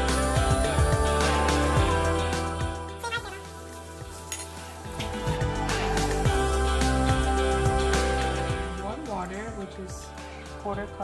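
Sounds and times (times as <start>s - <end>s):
quiet background music: 0.0s - 11.0s
metal spoons clinking: 3.8s - 5.1s.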